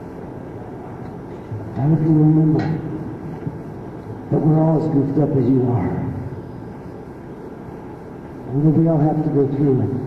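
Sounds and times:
hiss and hall noise: 0:00.0 - 0:10.0.

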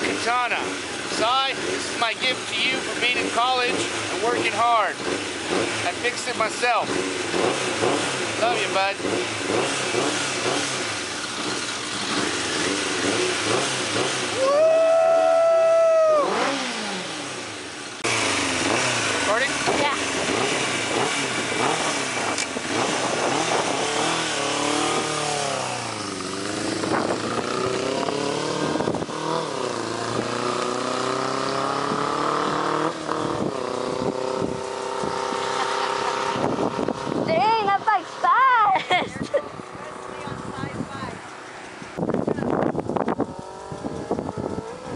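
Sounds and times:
motorcycle engine revving: 0:00.0 - 0:44.9.

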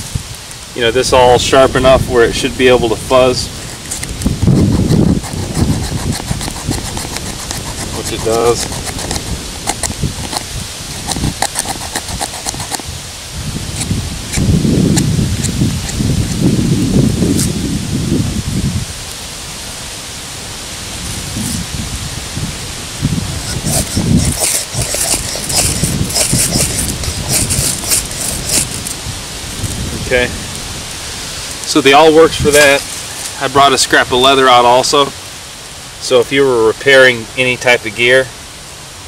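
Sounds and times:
low rumble on microphone: 0:00.0 - 0:19.1, 0:20.4 - 0:31.1
awl scraping across wood: 0:03.1 - 0:12.9, 0:23.2 - 0:29.0, 0:31.3 - 0:33.4.

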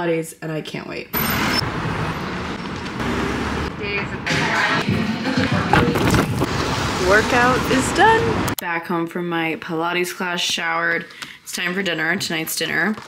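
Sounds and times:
traffic rumble: 0:01.2 - 0:08.6.

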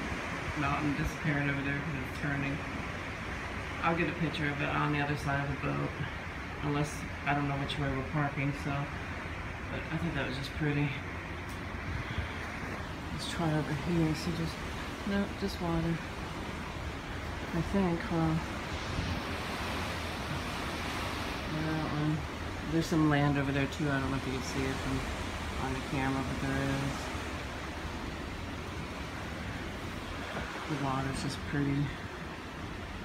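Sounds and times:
wind and sea rushing: 0:00.0 - 0:33.0.

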